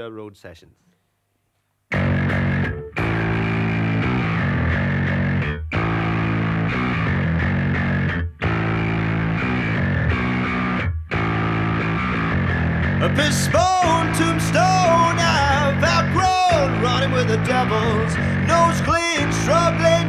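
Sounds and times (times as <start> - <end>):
bass guitar playing riff: 1.9 - 20.0
distorted electric guitars: 1.9 - 20.0.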